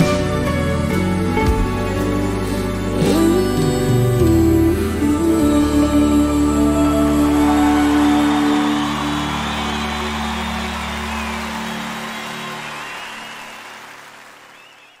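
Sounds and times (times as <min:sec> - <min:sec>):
audience applause and cheering: 0:06.7 - 0:15.0.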